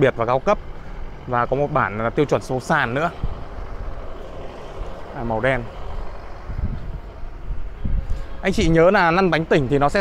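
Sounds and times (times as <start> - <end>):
low outdoor rumble: 0.0 - 10.0
wind buffeting microphone: 0.6 - 10.0.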